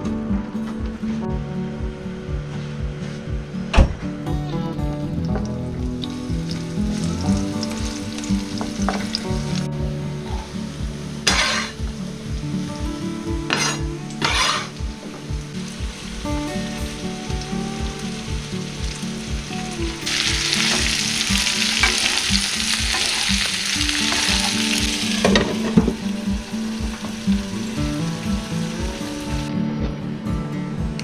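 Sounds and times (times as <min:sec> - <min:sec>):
background music with steady beat: 0:00.0 - 0:31.0
peppers sizzling in a frying pan: 0:05.3 - 0:29.5.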